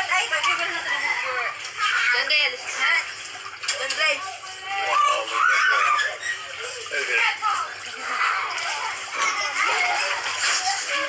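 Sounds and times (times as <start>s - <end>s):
water sloshing: 0.0s - 11.0s.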